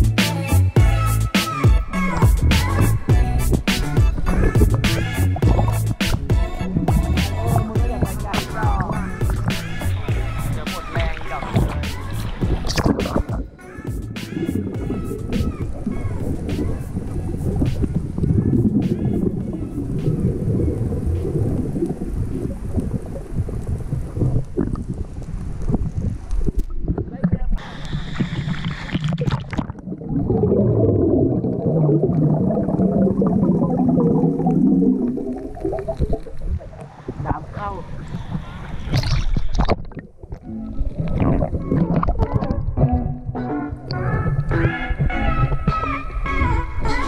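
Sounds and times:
water splashing: 1.5 - 47.0
muffled underwater swimming: 1.7 - 47.0.

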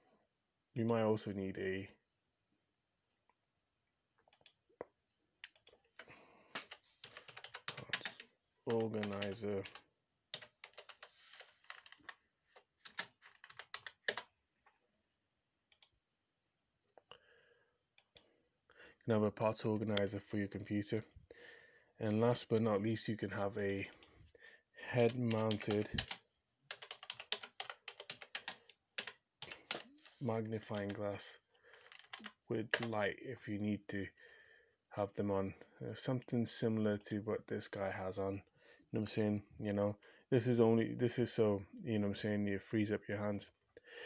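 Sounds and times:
typing on computer keyboard: 5.4 - 14.3, 25.0 - 29.9, 30.7 - 31.0, 31.8 - 32.9.

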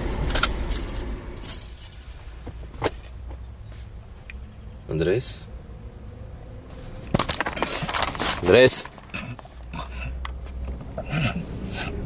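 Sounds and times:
car keys jingling: 0.0 - 3.2
car low hum: 0.0 - 12.0.

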